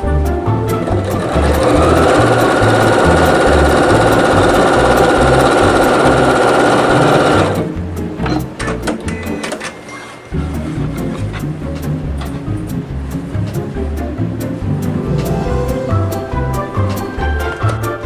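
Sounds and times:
background music with steady beat: 0.0 - 18.0
sewing machine stitching: 0.8 - 7.7.

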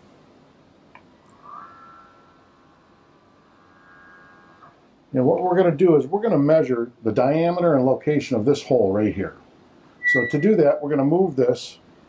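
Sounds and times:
faint motor whine: 0.0 - 12.0.

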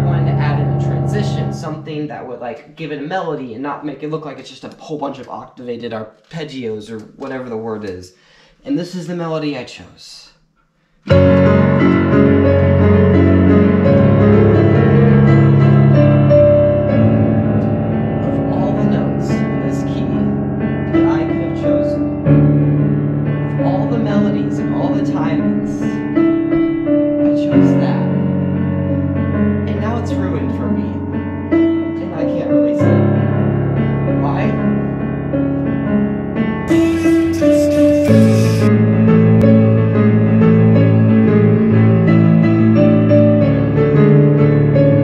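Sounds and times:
digital piano melody: 0.0 - 2.4, 11.1 - 45.0.

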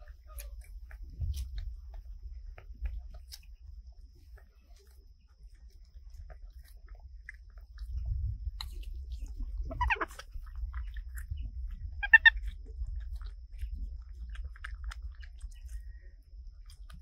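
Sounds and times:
monkeys chewing and smacking: 0.0 - 17.0
high-pitched monkey call: 9.6 - 10.2, 12.0 - 12.4.

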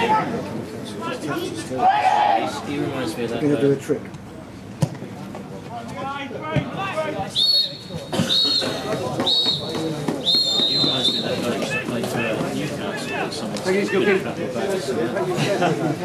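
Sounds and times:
players shouting: 1.0 - 2.9, 5.8 - 14.2
referee whistle blasts: 7.3 - 11.5.

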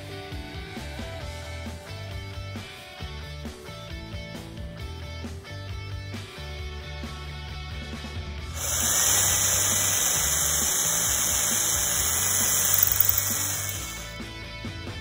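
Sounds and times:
cordless drill grinding into wood: 8.6 - 14.2.

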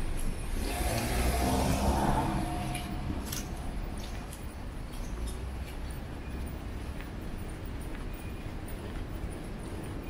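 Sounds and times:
car driving past: 0.4 - 4.9.

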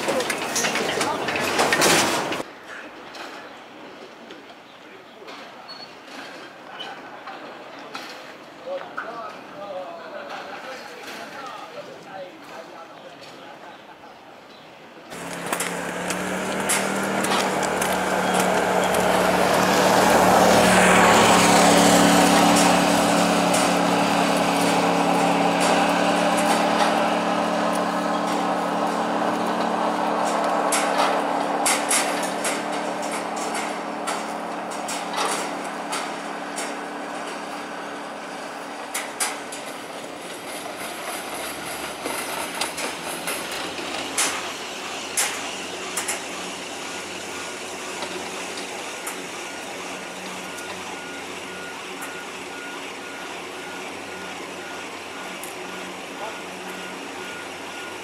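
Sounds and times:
clicks and clanks of baskets: 0.0 - 2.5, 15.1 - 37.8, 38.9 - 46.3
machine hum: 15.1 - 39.9.

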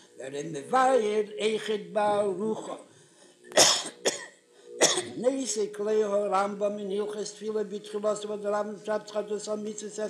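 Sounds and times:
man coughing: 2.6 - 2.8, 3.6 - 5.2.

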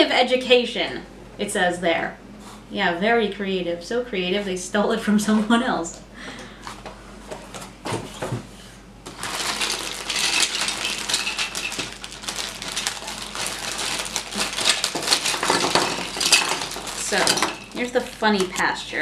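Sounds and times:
plastic toys clattering on table: 9.1 - 18.6
plastic bag crinkling: 9.1 - 18.8.

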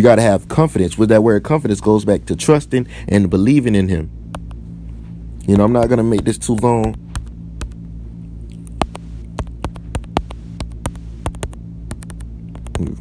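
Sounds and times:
low electrical hum: 0.0 - 13.0.

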